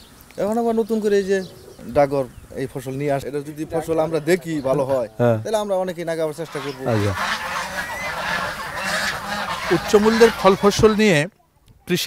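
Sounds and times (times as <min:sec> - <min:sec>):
man's voice: 0:03.2 - 0:05.5
ducks quacking: 0:06.2 - 0:11.3.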